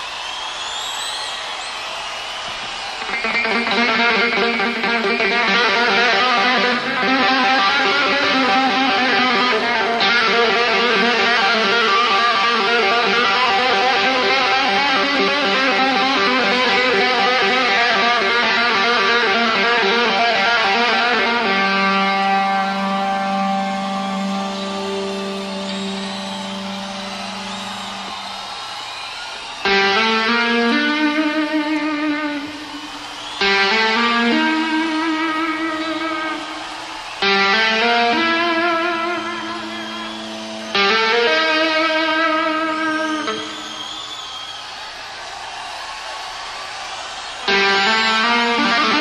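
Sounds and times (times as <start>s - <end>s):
crowd cheering: 0.0s - 49.0s.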